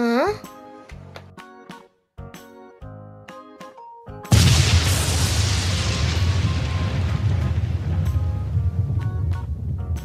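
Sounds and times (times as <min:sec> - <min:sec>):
deep thunder rumble: 0:04.3 - 0:10.0.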